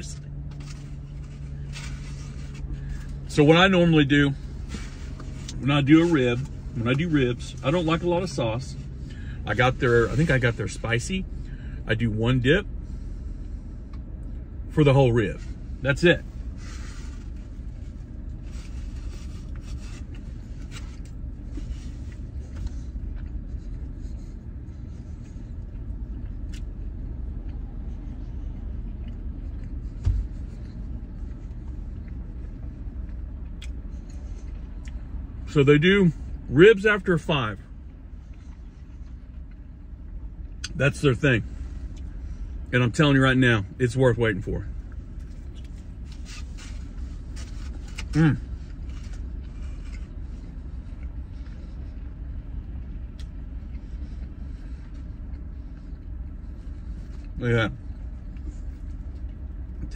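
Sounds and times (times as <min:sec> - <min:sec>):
man chewing and rustling: 0:00.0 - 0:11.5, 0:12.8 - 0:35.5, 0:37.6 - 0:42.7, 0:44.7 - 0:59.9
car engine idling: 0:00.0 - 0:59.9.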